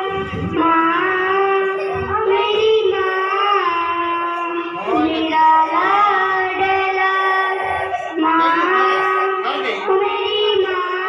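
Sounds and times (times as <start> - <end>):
girl singing into a microphone: 0.0 - 11.0.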